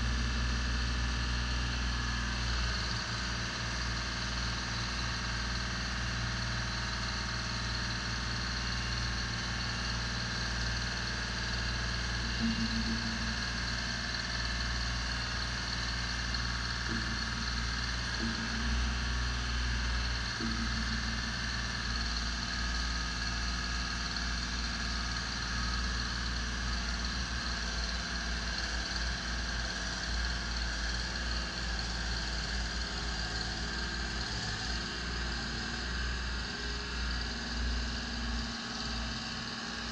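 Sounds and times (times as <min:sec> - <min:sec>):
diesel engine running under load: 0:00.0 - 0:39.9.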